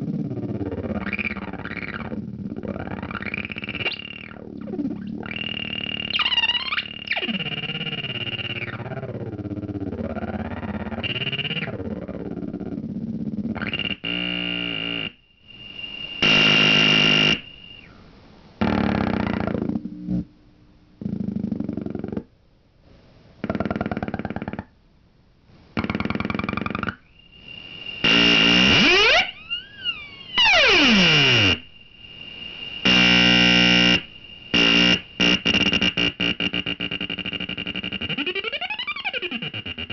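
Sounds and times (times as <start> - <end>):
buzzy electronic synthesizer tones: 0.0 - 17.9, 18.6 - 20.3, 23.4 - 24.7, 25.8 - 31.8, 32.8 - 39.9
falling synthesizer pitch sweep: 28.0 - 31.6.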